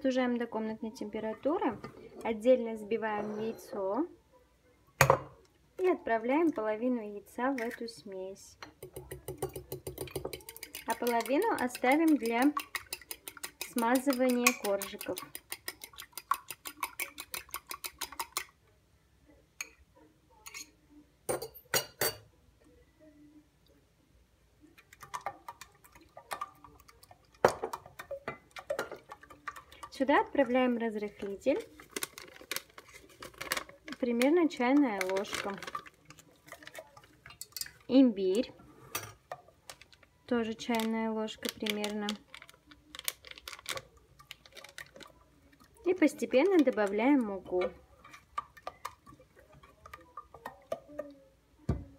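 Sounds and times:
fork beating egg in glass bowl: 8.8s - 18.5s
whisk clicking against pot: 8.8s - 18.5s.

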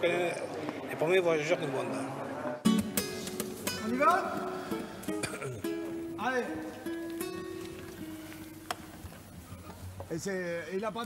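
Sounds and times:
acoustic guitar notes plucked: 2.6s - 8.8s.

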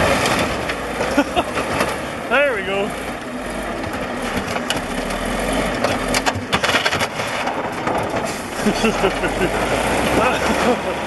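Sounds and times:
bulldozer diesel engine under load: 0.0s - 11.0s
metal clanks and cracks: 3.8s - 5.2s, 5.8s - 8.5s.

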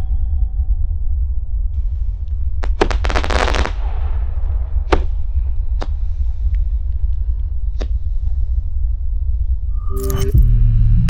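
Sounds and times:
low rumble: 0.0s - 11.0s
rapid rattle of firework pops: 2.6s - 4.0s
sharp firework reports: 2.6s - 5.2s.

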